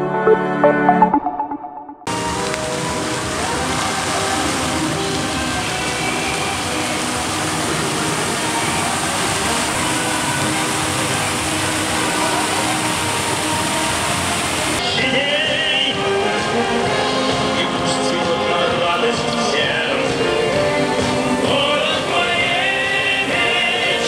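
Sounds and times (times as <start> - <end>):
fountain water rushing: 2.1 - 24.0
faint voices: 3.3 - 14.2.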